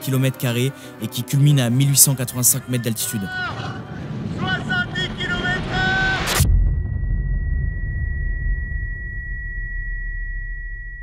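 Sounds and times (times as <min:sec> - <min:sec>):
man shouting: 0:03.0 - 0:03.8
wind rumble: 0:03.3 - 0:09.4
low rumble: 0:03.4 - 0:11.0
high-pitched ringing tone: 0:06.5 - 0:11.0.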